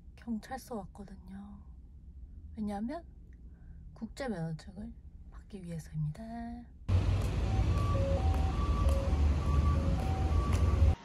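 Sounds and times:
street noise rumble: 6.9s - 11.0s.

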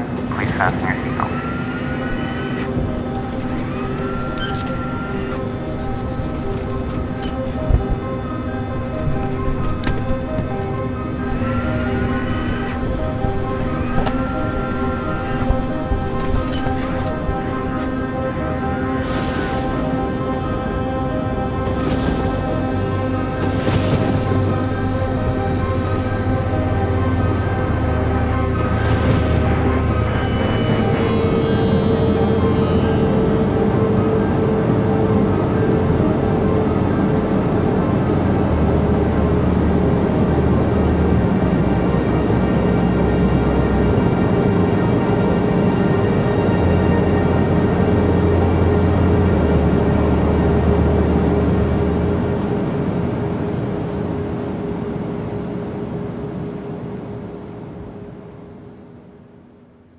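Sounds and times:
jet engines roaring: 0.0s - 58.5s
held musical drone: 0.0s - 59.4s
faint high whine: 0.0s - 59.9s.

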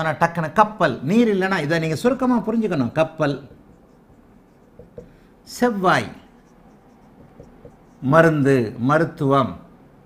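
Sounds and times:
marker writing on whiteboard: 2.6s - 5.3s, 6.1s - 8.3s
marker tip tapping board: 3.5s - 5.2s, 6.8s - 8.0s.

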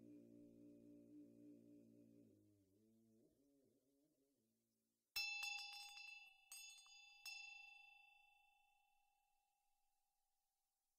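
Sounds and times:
small metal bell ringing: 5.2s - 9.5s.

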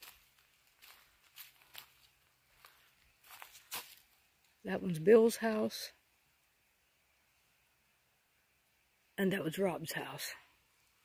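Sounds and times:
footsteps on dry leaves: 0.0s - 4.2s.

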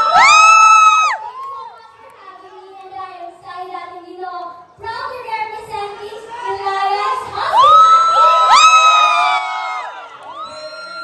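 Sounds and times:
crowd cheering: 0.0s - 1.9s, 6.5s - 11.0s.

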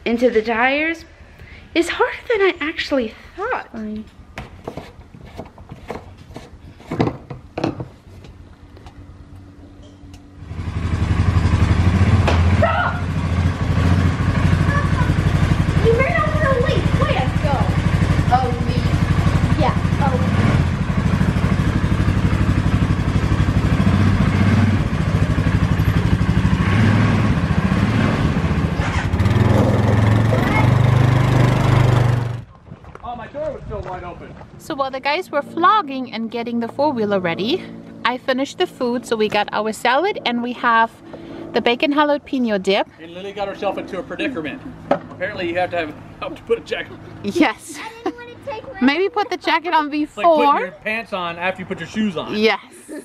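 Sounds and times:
atv engine running: 7.4s - 32.6s, 34.5s - 52.5s.

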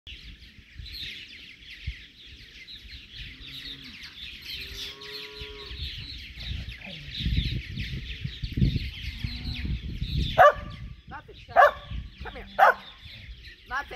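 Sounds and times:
birds chattering: 0.1s - 13.9s
dog barking loudly: 10.4s - 10.8s, 11.6s - 11.9s, 12.6s - 12.9s.

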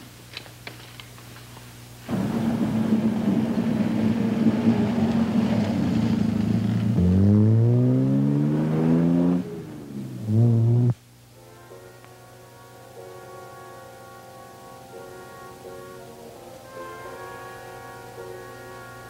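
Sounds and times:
car engine accelerating: 2.1s - 11.0s.

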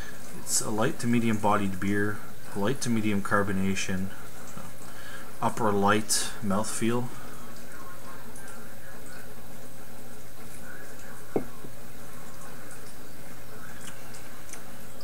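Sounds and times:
constant hiss: 0.0s - 15.0s
faint hum: 0.0s - 15.0s.

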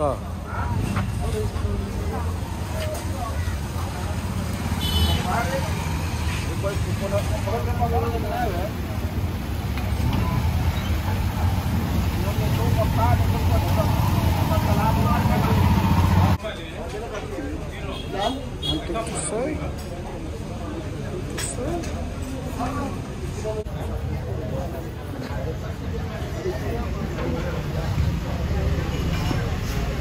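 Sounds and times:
passing street traffic: 0.0s - 30.0s.

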